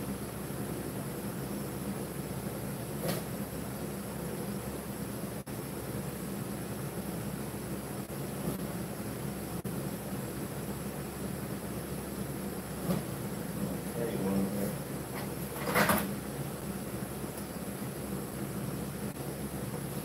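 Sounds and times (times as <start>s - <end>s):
electric fans whirring: 0.0s - 20.0s.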